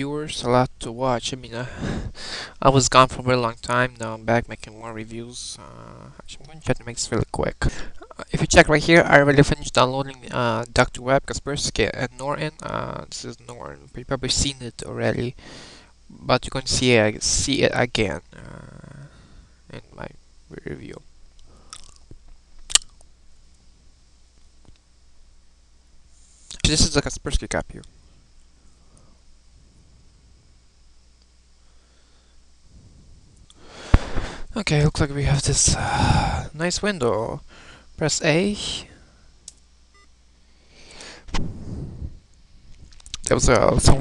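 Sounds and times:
faint electronic beep: 0:39.9 - 0:40.2.

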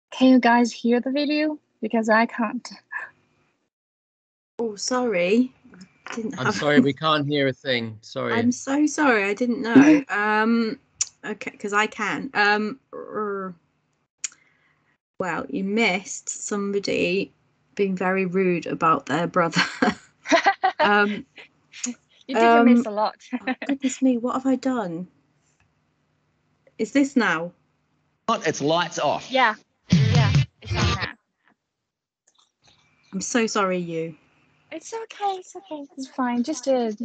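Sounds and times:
person saying um: 0:06.1 - 0:08.8, 0:09.4 - 0:10.7, 0:20.4 - 0:21.4, 0:22.3 - 0:24.4, 0:28.3 - 0:31.1, 0:34.8 - 0:37.0
person speaking: 0:06.1 - 0:10.7, 0:17.8 - 0:25.0, 0:28.3 - 0:31.1, 0:34.8 - 0:37.0.

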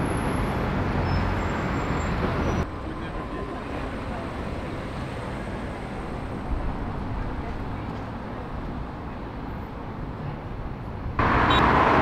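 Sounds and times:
street traffic noise: 0:00.0 - 0:12.0
car engine rumbling: 0:11.2 - 0:12.0.

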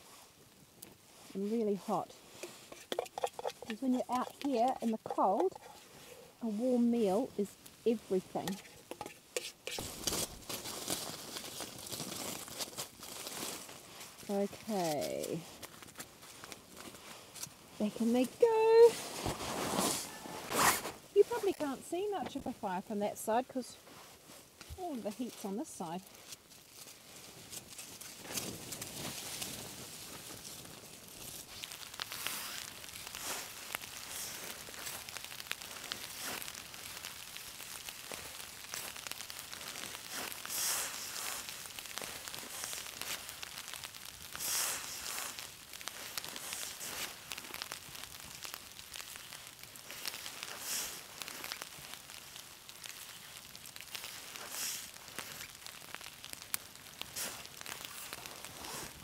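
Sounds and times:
campfire crackling and popping: 0:00.0 - 0:59.0.

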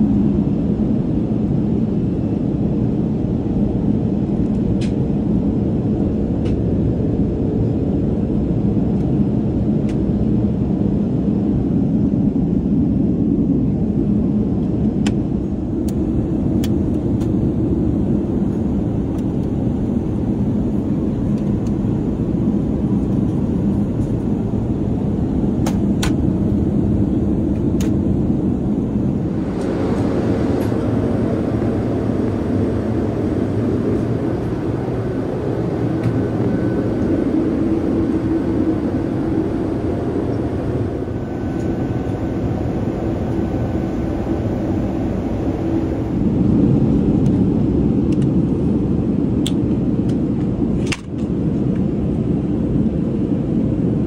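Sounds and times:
airliner cabin rumble: 0:00.0 - 0:54.0.

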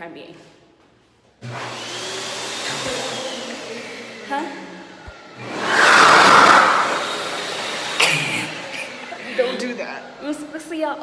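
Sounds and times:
hand dryer blowing: 0:01.4 - 0:11.0.

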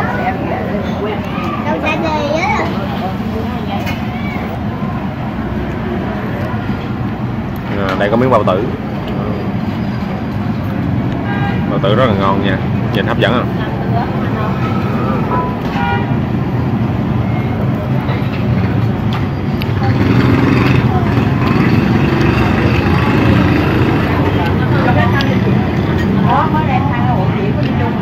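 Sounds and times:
people talking: 0:00.0 - 0:05.0, 0:07.7 - 0:09.6, 0:11.7 - 0:15.7, 0:19.6 - 0:28.0
vehicle engines running: 0:00.0 - 0:28.0.

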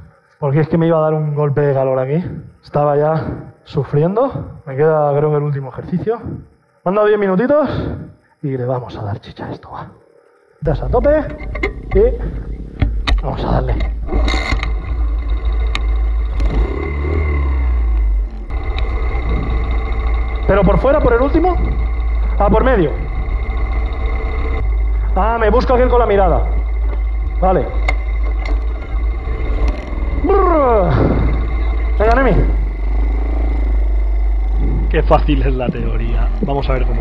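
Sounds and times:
motorbike engine running hard: 0:14.0 - 0:37.0
wind rumble on microphone: 0:18.4 - 0:37.0.

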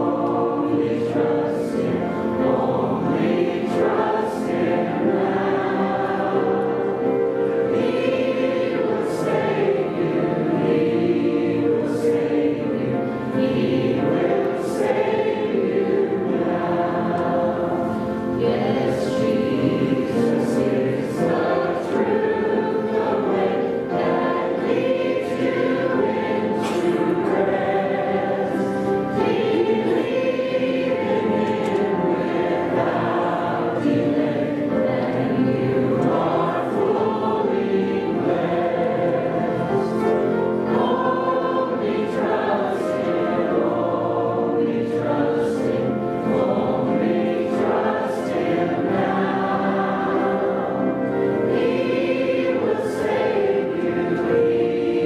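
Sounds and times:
voices singing a hymn: 0:00.0 - 0:55.0.

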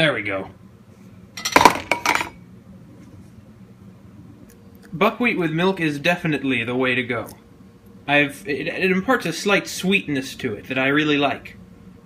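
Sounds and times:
kitchenware clattering: 0:01.4 - 0:02.4.

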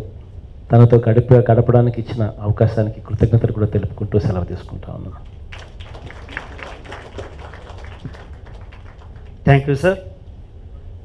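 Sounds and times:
audience applauding: 0:05.5 - 0:09.6.

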